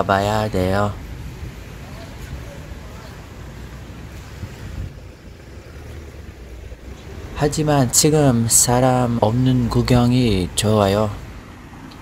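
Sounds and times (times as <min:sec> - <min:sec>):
faint street background: 0:00.0 - 0:12.0
wind buffeting microphone: 0:00.9 - 0:12.0.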